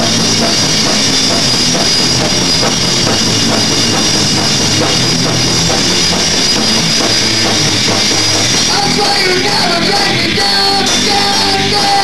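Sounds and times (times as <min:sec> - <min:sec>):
drum kit: 0:00.0 - 0:12.0
electric guitars: 0:00.0 - 0:12.0
punk rock band playing live: 0:00.0 - 0:12.0.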